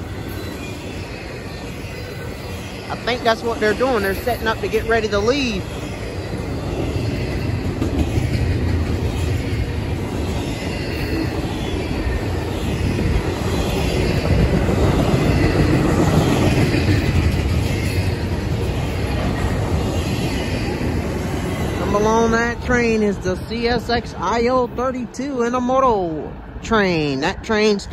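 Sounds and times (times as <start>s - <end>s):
train wheels rumbling on rail: 0.0s - 26.6s.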